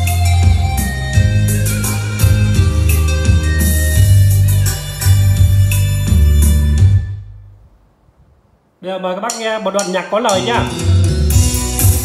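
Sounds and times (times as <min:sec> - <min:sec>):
instrumental music with heavy bass: 0:00.0 - 0:07.7, 0:09.2 - 0:12.0.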